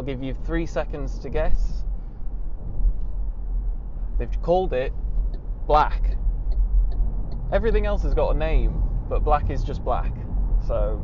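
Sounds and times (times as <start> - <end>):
road and tyre rumble: 0.0 - 11.0
wind noise in car cabin: 0.0 - 11.0.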